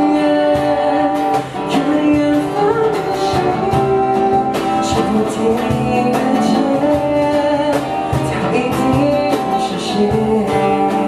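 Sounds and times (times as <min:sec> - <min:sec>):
cajon beats: 0:00.0 - 0:11.0
person singing: 0:00.0 - 0:11.0
strummed acoustic guitar: 0:00.0 - 0:11.0.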